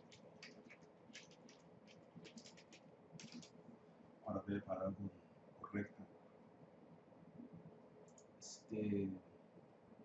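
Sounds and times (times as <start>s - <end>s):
typing on computer keyboard: 0.0s - 3.5s.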